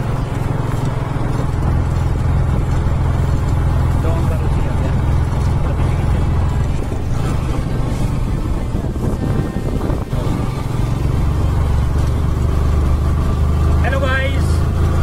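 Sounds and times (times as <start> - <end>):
motorcycle engine running: 0.0 - 15.0
wind rumble on microphone: 0.0 - 15.0.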